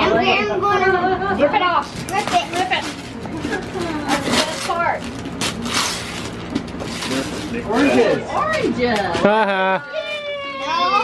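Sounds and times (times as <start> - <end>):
wrapping paper tearing: 1.8 - 8.0
paper rustling: 1.9 - 8.0.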